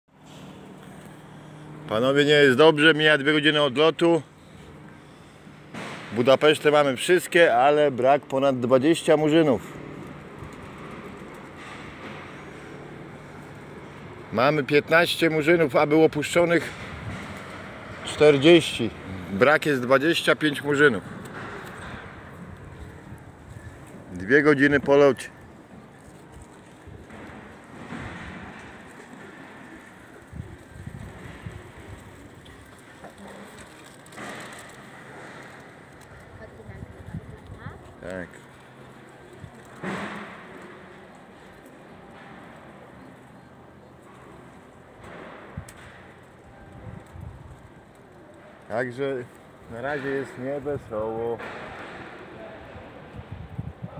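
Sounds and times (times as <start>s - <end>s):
open air hiss and hum: 0.2s - 36.4s.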